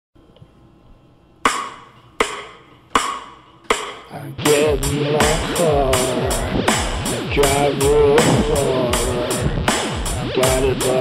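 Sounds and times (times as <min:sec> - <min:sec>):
sharp percussive hits: 0:01.5 - 0:11.0.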